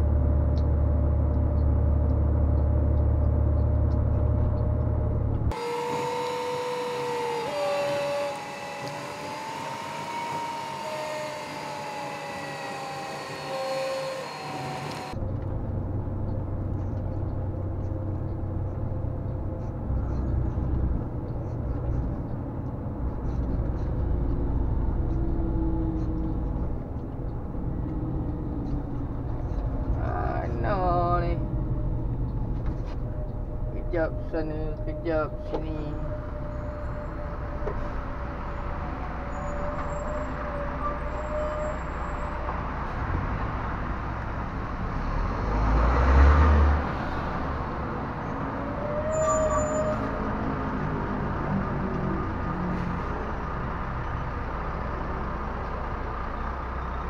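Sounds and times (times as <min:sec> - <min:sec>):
truck cab drone: 0:00.0 - 0:57.0.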